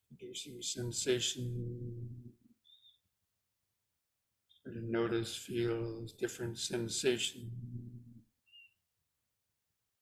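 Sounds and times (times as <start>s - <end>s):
faint high-pitched whistle tone: 8.4s - 8.9s.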